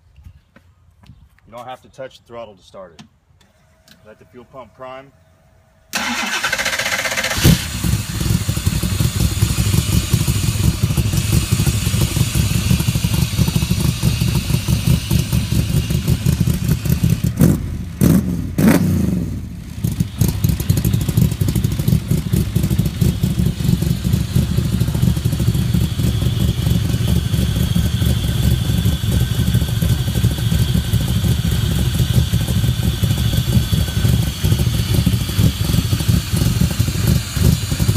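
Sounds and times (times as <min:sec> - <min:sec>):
starter motor cranking: 0:06.0 - 0:08.8
loud car engine idling: 0:06.0 - 0:18.0, 0:19.4 - 0:37.9.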